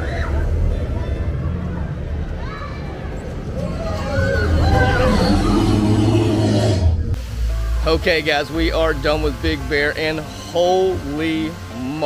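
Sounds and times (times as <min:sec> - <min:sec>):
roller coaster rumbling on track: 0:00.0 - 0:07.2.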